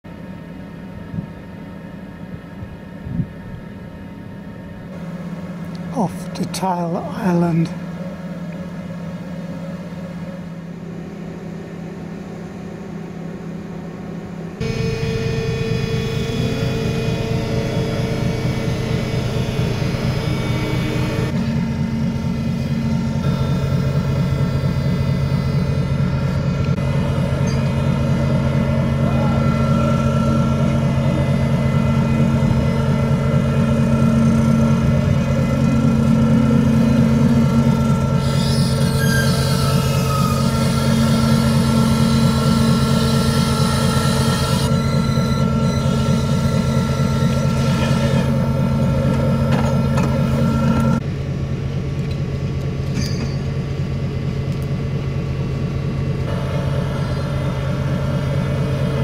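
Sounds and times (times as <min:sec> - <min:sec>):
ship machinery humming: 0:00.1 - 0:59.0.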